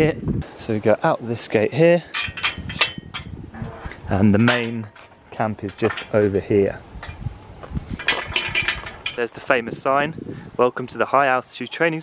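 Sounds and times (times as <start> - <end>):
metallic clinks and rattles: 2.1 - 3.3, 8.0 - 9.3
metal gate thumps: 2.1 - 6.4, 8.0 - 9.3.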